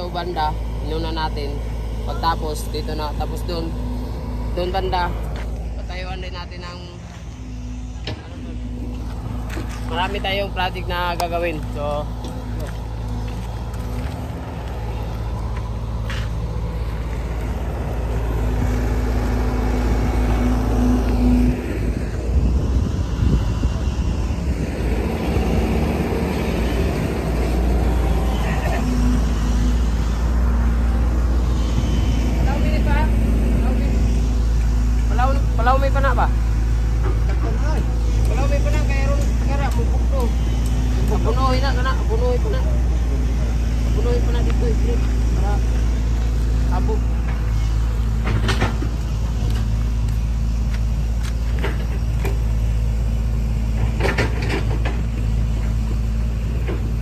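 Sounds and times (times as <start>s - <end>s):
excavator diesel engine drone: 0.0s - 57.0s
people's voices: 23.4s - 30.0s.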